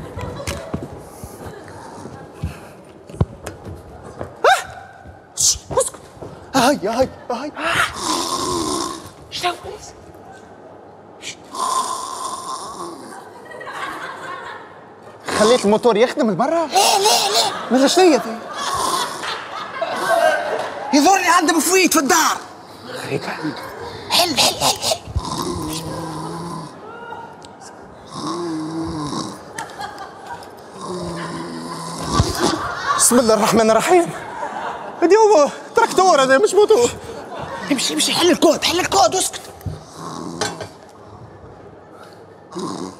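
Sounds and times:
exaggerated snoring: 0:07.9 - 0:09.2, 0:11.4 - 0:13.3, 0:18.6 - 0:19.3, 0:24.2 - 0:26.8, 0:28.0 - 0:29.5, 0:30.7 - 0:32.6, 0:39.8 - 0:40.8, 0:42.5 - 0:42.9.

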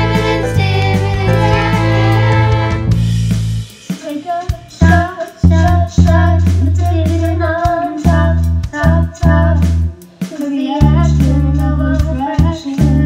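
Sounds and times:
child singing a pop song: 0:00.0 - 0:02.8, 0:03.9 - 0:13.0
backing track of bass and drums: 0:00.0 - 0:13.0.

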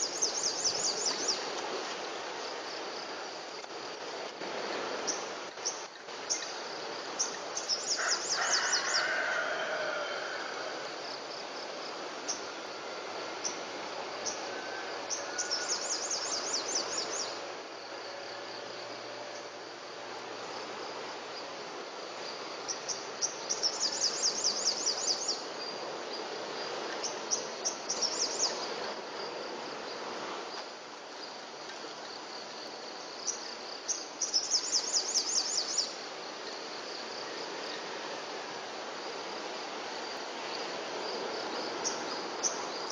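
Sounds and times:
insects trilling: 0:00.0 - 0:42.9
outdoor background noise: 0:00.0 - 0:42.9.

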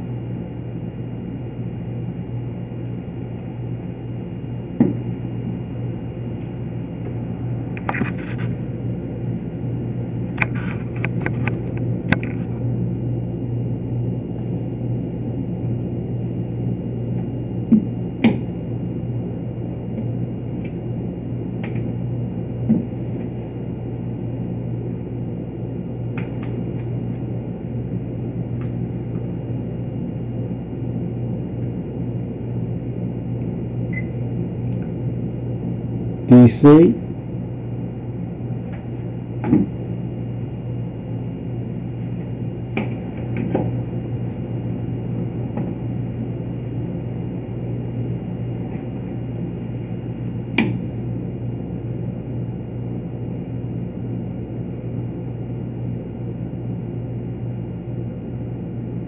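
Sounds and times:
low electrical hum: 0:00.0 - 0:59.0.

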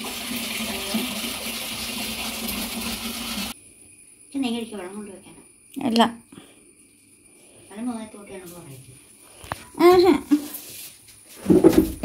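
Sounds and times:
running water: 0:00.0 - 0:03.6.

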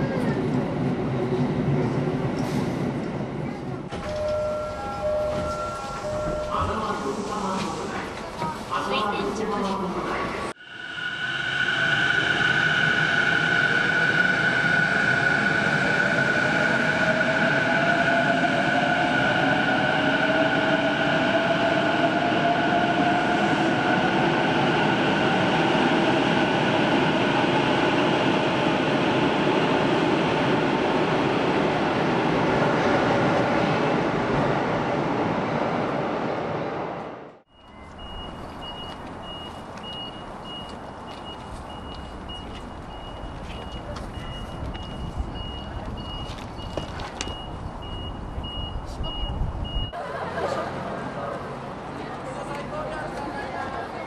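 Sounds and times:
reversing alarm beeping: 0:04.0 - 0:06.9, 0:37.5 - 0:50.0
electric train pulling out: 0:10.5 - 0:32.6
distant traffic: 0:37.0 - 0:54.0.

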